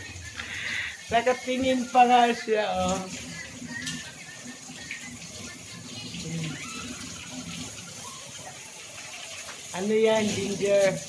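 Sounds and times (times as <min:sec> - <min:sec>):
tap water running into sink: 0:00.0 - 0:11.0.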